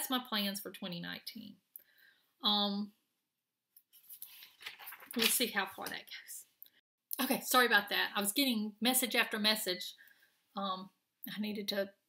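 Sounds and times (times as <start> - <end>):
woman's voice: 2.4 - 3.0, 5.2 - 6.5, 7.1 - 10.0, 10.6 - 12.0.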